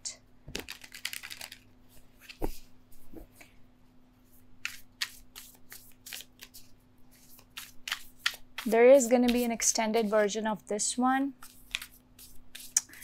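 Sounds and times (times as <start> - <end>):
cards riffling: 0.5 - 1.6, 4.6 - 9.4
cards shuffling: 0.5 - 2.6, 4.6 - 10.2, 11.4 - 13.0.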